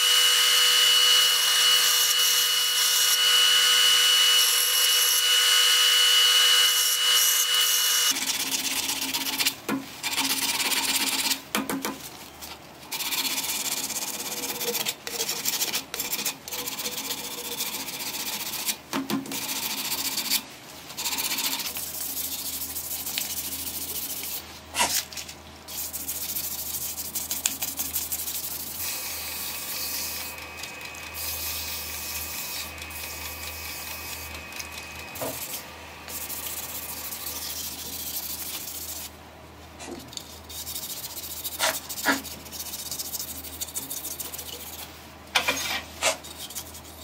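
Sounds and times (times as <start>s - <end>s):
sandpaper rubbing on spinning wood: 12.9s - 20.4s, 21.0s - 24.5s, 25.7s - 39.2s, 40.2s - 45.0s
faint steady whine: 27.8s - 39.1s.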